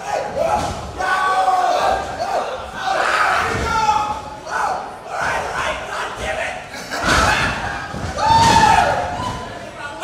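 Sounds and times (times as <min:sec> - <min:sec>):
crowd yelling and cheering: 0:00.0 - 0:06.2, 0:07.1 - 0:10.0.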